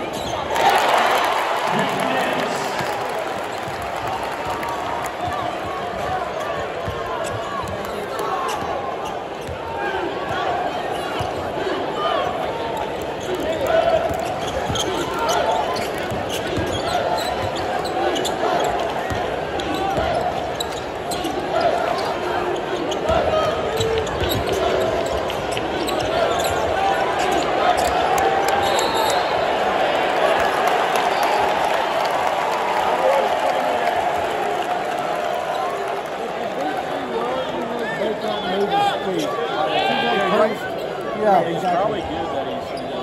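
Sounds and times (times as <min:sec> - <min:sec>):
crowd chatter: 0:00.0 - 0:43.0.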